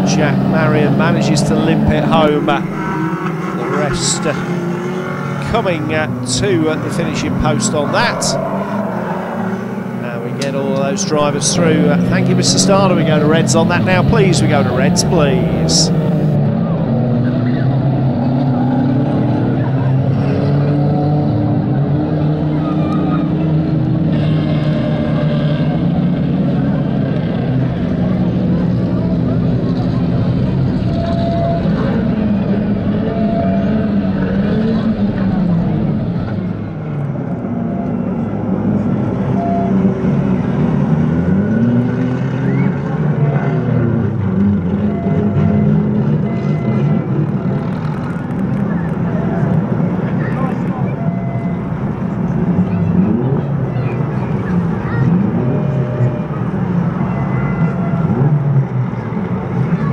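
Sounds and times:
car engines idling and revving: 0.0s - 59.9s.

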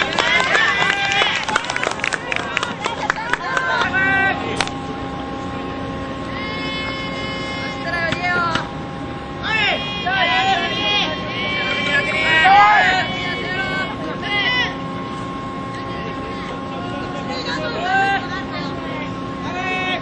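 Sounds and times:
children shouting chants: 0.0s - 4.4s, 6.2s - 8.6s, 9.4s - 14.8s
low hum: 0.0s - 20.0s.

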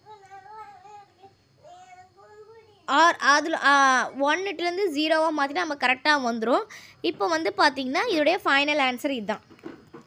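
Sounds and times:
faint child singing or calling: 0.0s - 3.1s.

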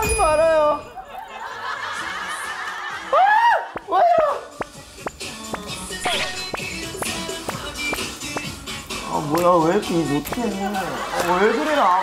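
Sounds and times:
people laughing: 1.0s - 3.8s, 10.5s - 12.0s.

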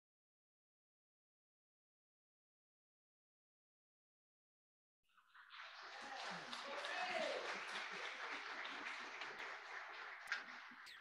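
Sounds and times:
congregation applauding: 5.2s - 11.0s.

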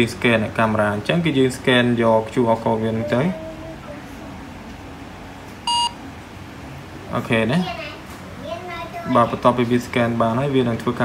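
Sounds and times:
smartphone beep: 5.7s - 6.0s.

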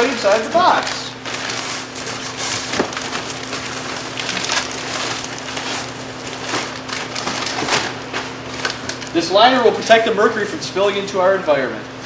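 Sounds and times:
plastic bag rustling and crinkling: 0.0s - 9.2s.

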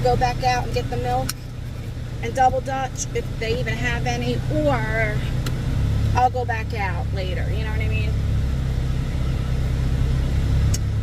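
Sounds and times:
car engine rumble from inside: 0.0s - 11.0s.

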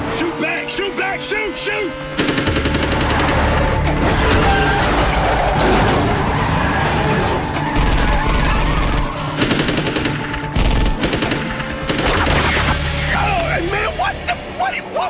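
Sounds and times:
film score music: 0.0s - 15.0s
automatic gunfire bursts: 2.2s - 3.4s.

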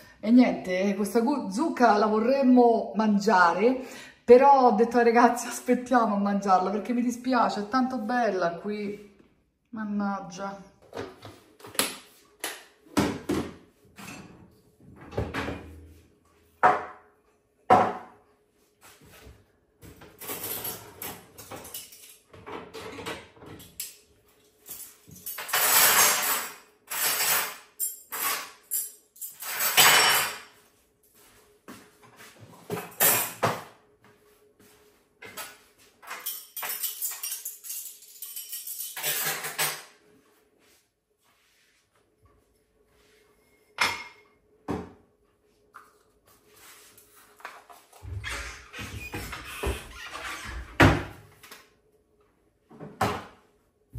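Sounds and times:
dishes and utensils clinking: 24.7s - 30.6s, 35.3s - 39.9s.

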